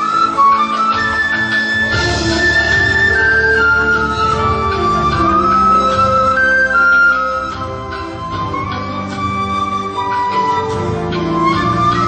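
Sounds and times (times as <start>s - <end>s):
bamboo flute melody: 0.0s - 12.0s
lower accompaniment: 0.0s - 12.0s.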